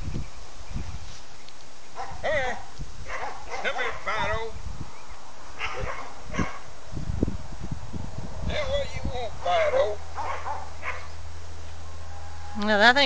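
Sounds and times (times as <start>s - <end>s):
puppies yipping and whining: 5.6s - 6.6s.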